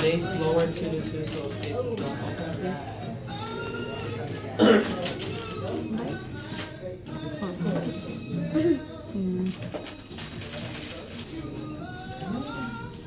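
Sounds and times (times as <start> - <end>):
background music: 0.0 - 13.0
low indistinct voices: 0.0 - 13.0.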